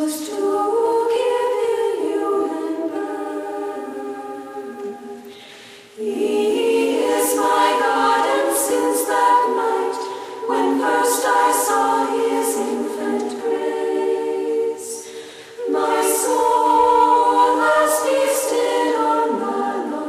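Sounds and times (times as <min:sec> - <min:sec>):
women's choir singing a hymn: 0:00.0 - 0:20.0.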